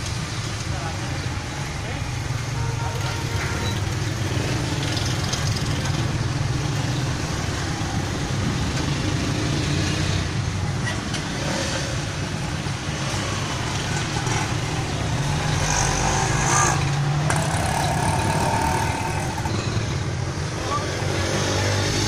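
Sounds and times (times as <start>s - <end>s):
street traffic: 0.0s - 22.0s
vehicle engine humming: 11.9s - 20.8s.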